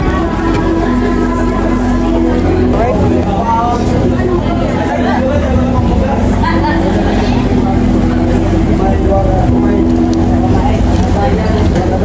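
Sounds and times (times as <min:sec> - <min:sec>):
vehicle interior rumble: 0:00.0 - 0:12.0
voices: 0:00.0 - 0:12.0.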